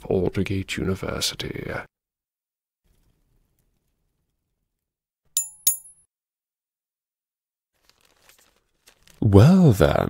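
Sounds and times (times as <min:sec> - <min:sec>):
small bell dings: 0:05.4 - 0:06.0.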